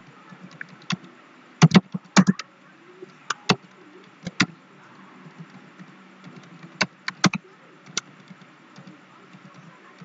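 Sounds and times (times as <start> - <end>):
faint steady hum: 0.0 - 10.0
computer keyboard key clicks: 5.4 - 9.6.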